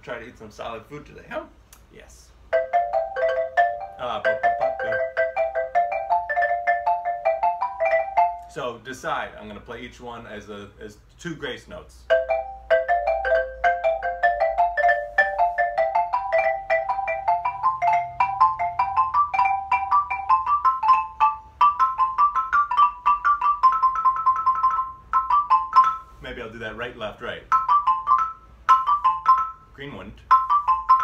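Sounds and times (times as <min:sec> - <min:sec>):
xylophone played with mallets: 0:02.5 - 0:08.7, 0:12.1 - 0:31.0.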